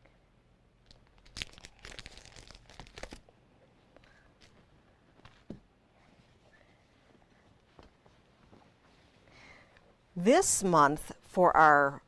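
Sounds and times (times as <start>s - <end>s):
plastic packaging crinkling: 0.9s - 3.3s.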